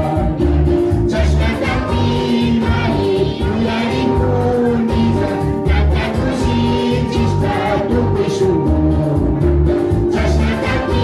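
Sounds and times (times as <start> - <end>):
group singing a hymn: 0.0 - 8.6, 9.8 - 11.0
amplified backing music with bass: 0.0 - 11.0.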